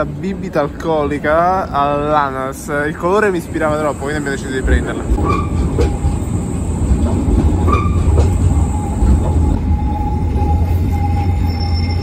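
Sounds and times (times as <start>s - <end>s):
tram wheels rumbling on rails: 0.0s - 12.0s
thin steady squeal: 7.7s - 12.0s.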